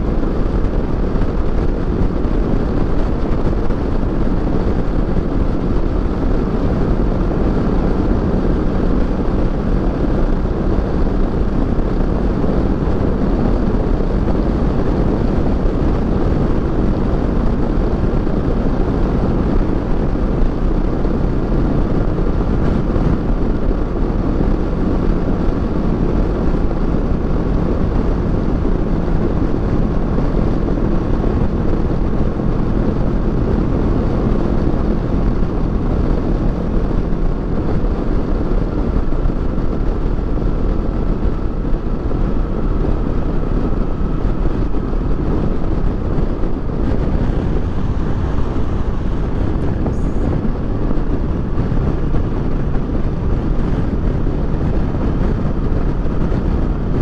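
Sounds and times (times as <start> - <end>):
motorcycle engine cruising: 0.0 - 57.0
wind rushing over microphone: 0.0 - 57.0.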